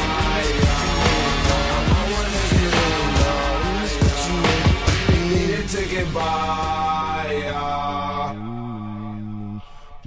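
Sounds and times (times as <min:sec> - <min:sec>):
music with busy vocals: 0:00.0 - 0:08.5.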